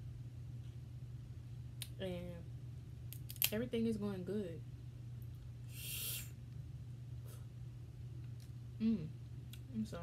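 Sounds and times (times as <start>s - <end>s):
steady low hum: 0.0s - 10.0s
short hiss: 5.7s - 6.3s
closed-mouth mm: 5.7s - 6.4s.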